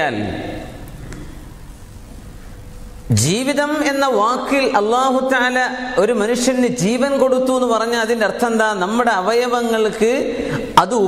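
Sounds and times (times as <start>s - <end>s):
background hiss and room noise: 0.0s - 11.0s
person speaking: 3.1s - 11.0s.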